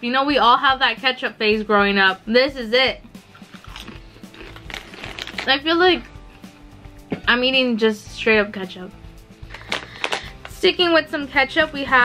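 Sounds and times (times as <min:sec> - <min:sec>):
soft background music: 0:00.0 - 0:12.0
potato chip crunching: 0:03.4 - 0:05.6.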